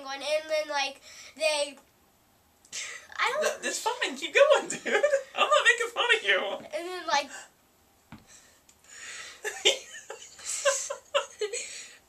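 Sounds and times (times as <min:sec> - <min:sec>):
man's stifled laughter: 0:09.4 - 0:11.8.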